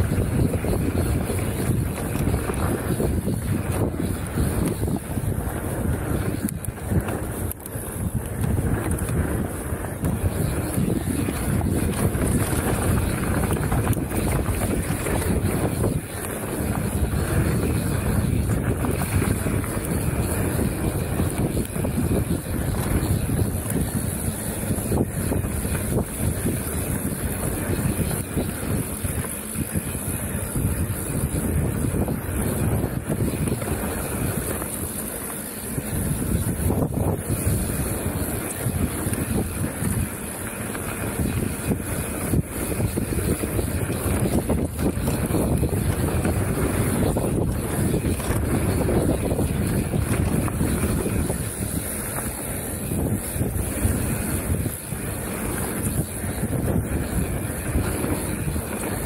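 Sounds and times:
bike knocking and rattling: 0:00.0 - 0:59.0
tyres rolling on dirt trail: 0:00.0 - 0:59.0
wind buffeting microphone: 0:00.0 - 0:59.0.

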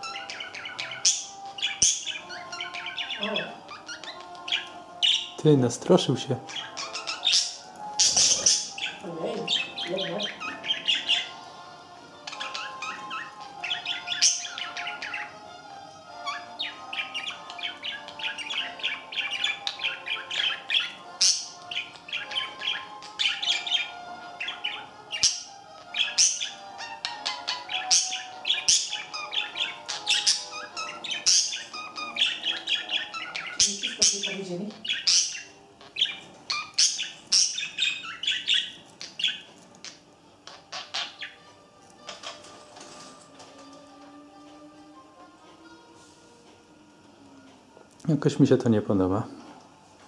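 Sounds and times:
budgerigars chattering: 0:00.0 - 0:11.6, 0:12.2 - 0:15.4, 0:16.1 - 0:42.5.

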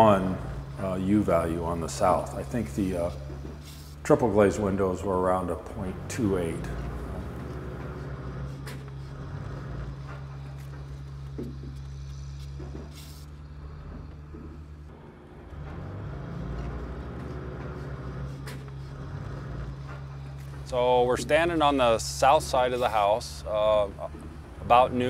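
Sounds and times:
motor humming: 0:00.0 - 0:25.0.

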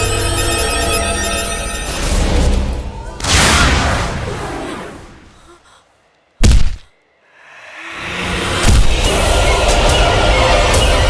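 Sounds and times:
loud thud: 0:06.4 - 0:06.9.

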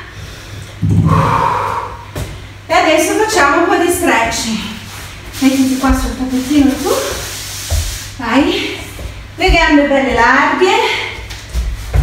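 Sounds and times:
woman exhaling heavily: 0:00.3 - 0:02.5.

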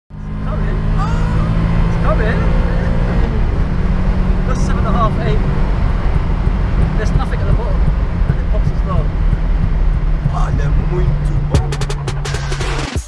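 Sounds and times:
car engine drone: 0:00.1 - 0:13.0
road rumble: 0:00.1 - 0:13.0.

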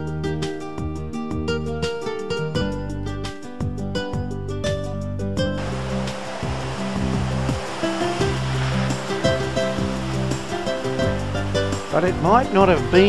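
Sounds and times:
background music: 0:00.0 - 0:13.0
surf breaking over rocks: 0:05.6 - 0:13.0.

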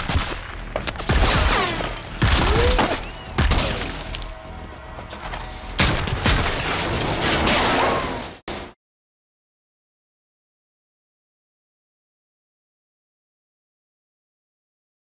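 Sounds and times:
gunfire: 0:00.0 - 0:04.2
trailer music: 0:00.0 - 0:07.5.

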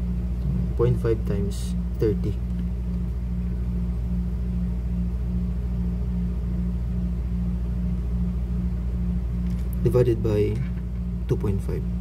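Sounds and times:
low pulsing background hum: 0:00.0 - 0:12.0.

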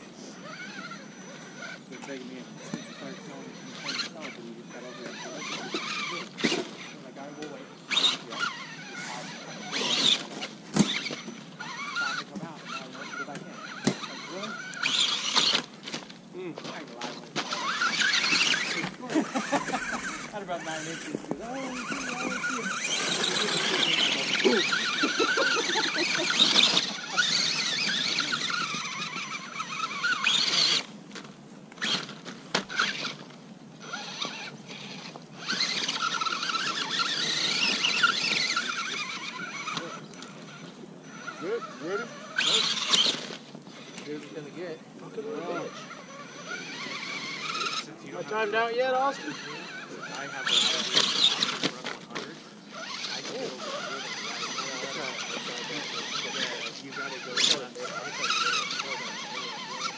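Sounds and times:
electric motor and gears whining: 0:00.0 - 0:59.9.

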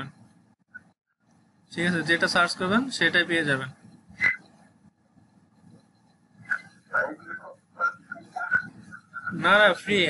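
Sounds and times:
dog barking: 0:06.5 - 0:08.7.

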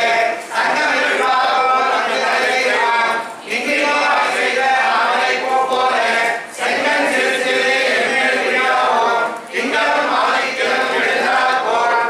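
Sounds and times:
congregation chanting in unison: 0:00.0 - 0:12.0.

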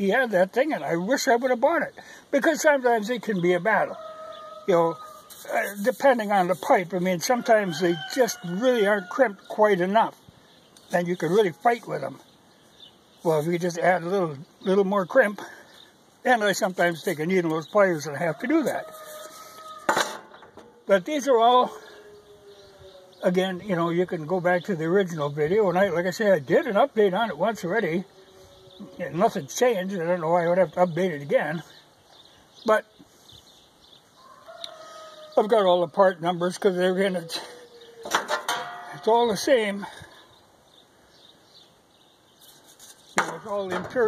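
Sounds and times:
faint rubbing and handling of metal pipe: 0:05.0 - 0:07.3, 0:17.9 - 0:20.7, 0:37.3 - 0:39.2, 0:42.4 - 0:44.0
sheet metal pipe clanking: 0:38.0 - 0:39.1.

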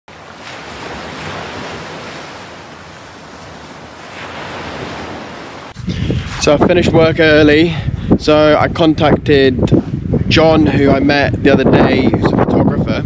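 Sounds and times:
sea waves washing: 0:00.1 - 0:06.6.

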